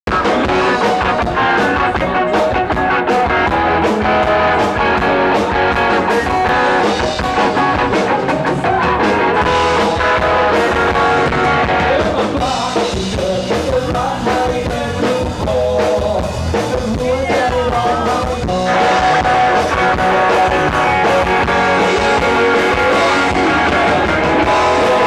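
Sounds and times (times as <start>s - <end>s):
electric guitar: 0.0s - 25.0s
drum kit beat: 0.1s - 25.0s
man singing: 0.1s - 25.0s.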